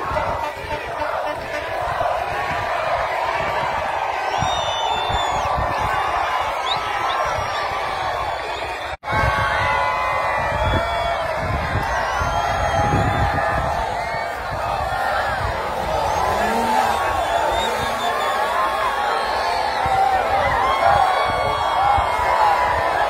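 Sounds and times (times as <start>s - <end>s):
crowd cheering and shouting: 0.0s - 23.0s.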